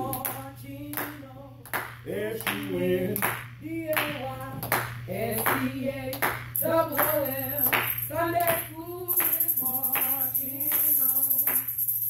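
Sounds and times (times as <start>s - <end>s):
gospel chorus singing: 0.0s - 10.1s
hand clapping: 0.1s - 11.8s.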